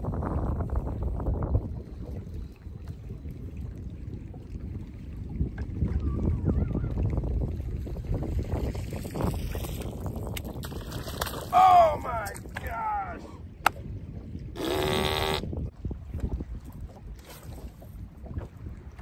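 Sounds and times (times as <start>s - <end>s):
wind buffeting microphone: 0.0s - 19.0s
water slapping boat hull: 1.1s - 19.0s
person exclaiming: 11.5s - 13.4s.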